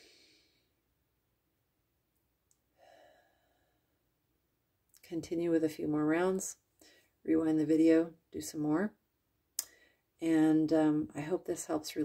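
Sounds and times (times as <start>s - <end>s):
woman breathing in deeply: 2.8s - 3.9s.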